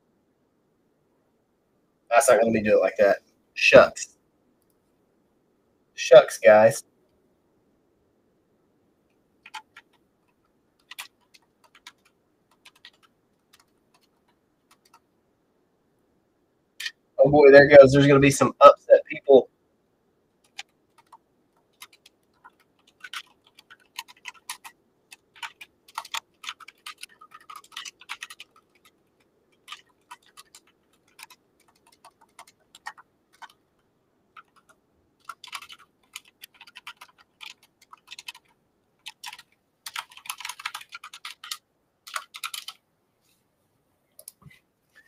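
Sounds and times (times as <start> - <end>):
typing on computer keyboard: 9.4 - 15.1, 20.4 - 42.8.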